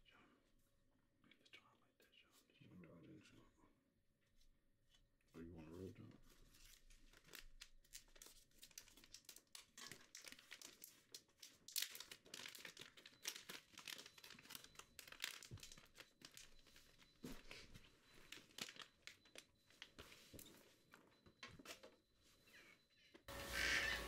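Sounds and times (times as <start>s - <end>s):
crinkling and crackling: 5.8s - 22.6s.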